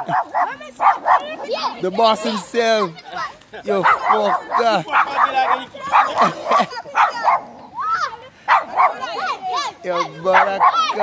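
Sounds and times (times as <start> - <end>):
people laughing: 0.0 - 0.3, 3.5 - 7.0
excited voices calling out: 0.0 - 11.0.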